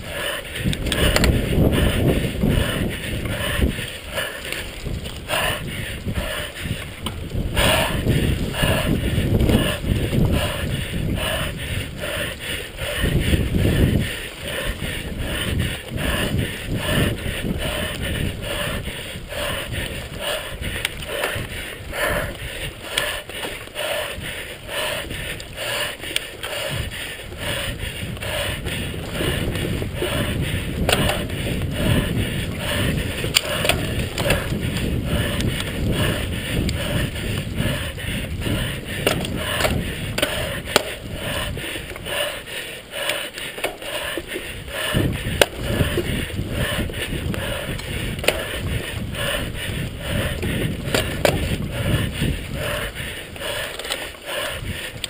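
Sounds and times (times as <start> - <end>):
bike rattling over bumps: 0.0 - 55.0
wind: 0.0 - 55.0.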